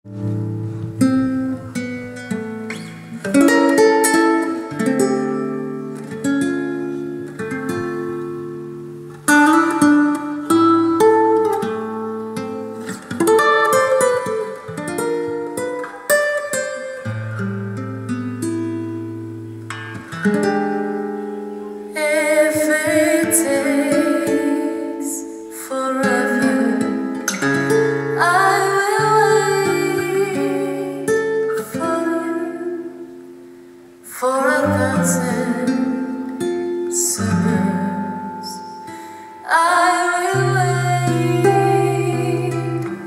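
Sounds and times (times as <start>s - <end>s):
acoustic guitar chords: 0.0s - 43.0s.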